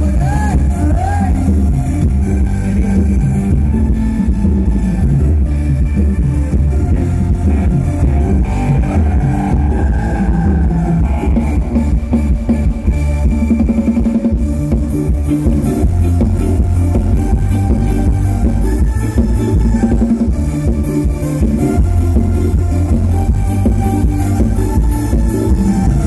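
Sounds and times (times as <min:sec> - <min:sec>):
heavy bass and drums: 0:00.0 - 0:26.0
live band dance music: 0:00.0 - 0:26.0.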